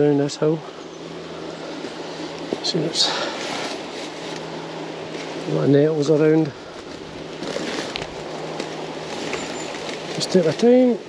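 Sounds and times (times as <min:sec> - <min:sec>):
plants rustling underfoot: 0:00.0 - 0:11.0.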